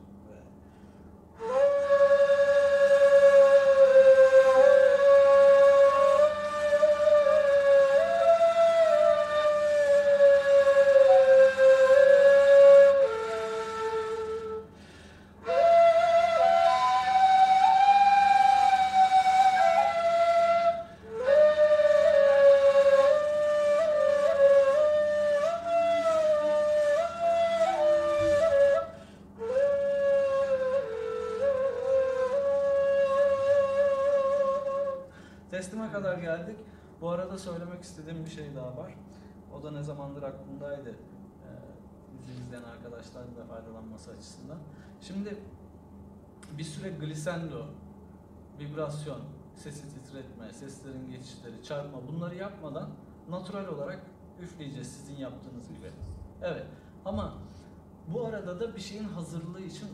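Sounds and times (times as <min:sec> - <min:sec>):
reed flutes playing slow melody: 0:01.4 - 0:35.4.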